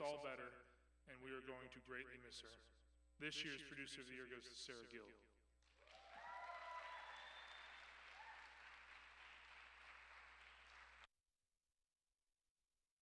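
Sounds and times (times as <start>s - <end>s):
audience applauding: 5.7s - 11.1s
people cheering: 5.7s - 11.1s.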